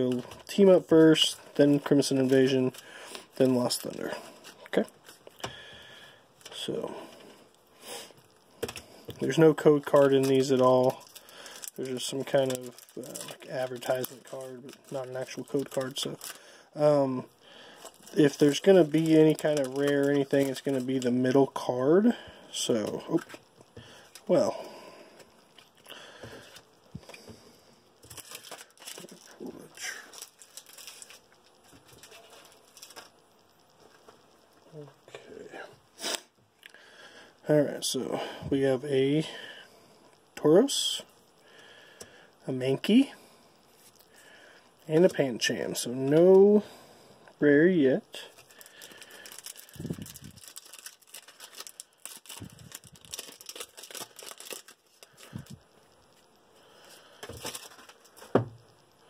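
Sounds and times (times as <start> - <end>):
foil wrapper crinkling: 0.0 - 6.8, 8.2 - 27.3, 28.0 - 34.3, 48.1 - 58.8
cards rustling and clicking: 28.0 - 33.2, 56.9 - 58.4.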